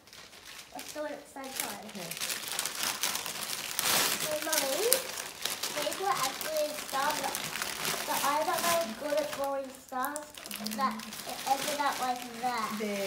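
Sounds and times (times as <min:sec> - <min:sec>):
wrapping paper crinkling: 0:00.0 - 0:13.0
voices talking: 0:05.7 - 0:13.0.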